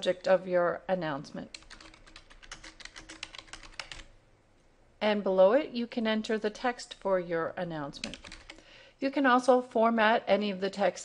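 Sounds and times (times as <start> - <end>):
keyboard keys clicking: 1.5 - 4.1, 8.0 - 8.6.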